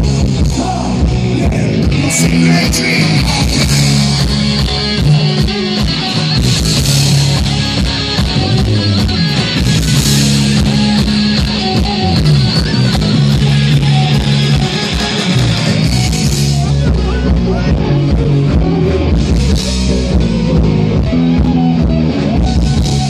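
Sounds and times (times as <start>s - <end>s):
drum kit steady beat: 0.0s - 23.0s
electric guitars: 0.0s - 23.0s.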